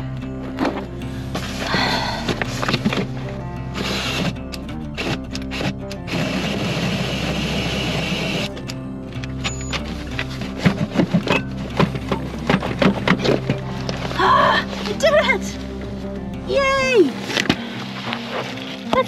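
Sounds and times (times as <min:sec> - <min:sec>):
background music: 0:00.0 - 0:19.0
drill cutting into wood: 0:05.0 - 0:08.5.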